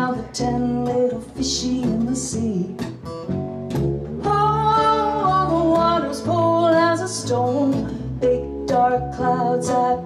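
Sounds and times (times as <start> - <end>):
acoustic guitar: 0.0 - 10.0
upright bass: 0.0 - 10.0
woman singing long notes: 4.2 - 10.0.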